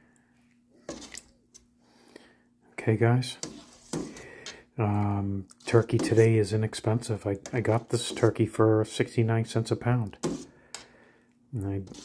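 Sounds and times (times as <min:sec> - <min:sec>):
faint steady hum: 0:00.0 - 0:12.0
ladle stirring soup: 0:00.4 - 0:01.8, 0:03.4 - 0:04.7, 0:05.4 - 0:08.6, 0:09.8 - 0:11.1, 0:11.7 - 0:12.0.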